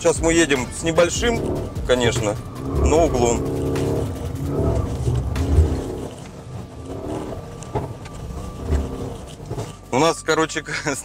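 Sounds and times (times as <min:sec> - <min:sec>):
car engine revving from inside cabin: 0:00.5 - 0:09.9.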